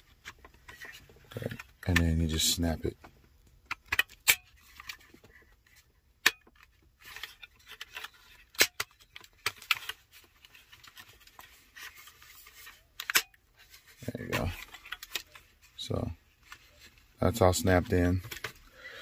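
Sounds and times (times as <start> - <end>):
plastic rubbing and scraping: 0.0 - 19.0.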